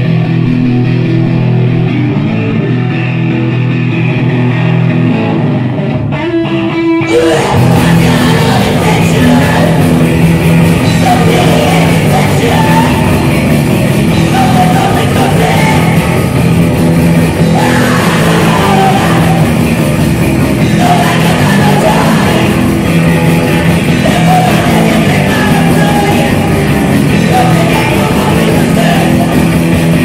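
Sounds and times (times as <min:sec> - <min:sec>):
bass guitar: 0:00.0 - 0:30.0
drum kit: 0:00.0 - 0:30.0
electric guitars: 0:00.0 - 0:30.0
live rock band playing: 0:00.0 - 0:30.0.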